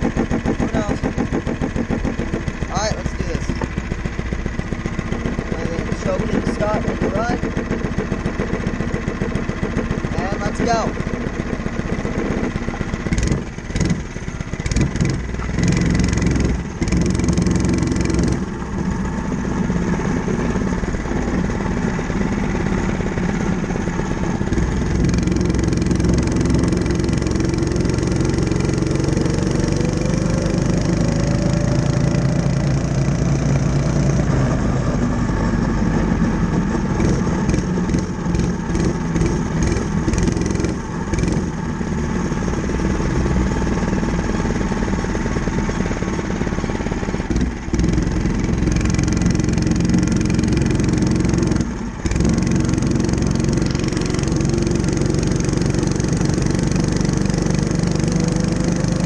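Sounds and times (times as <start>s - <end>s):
mini bike engine running: 0.0s - 59.0s.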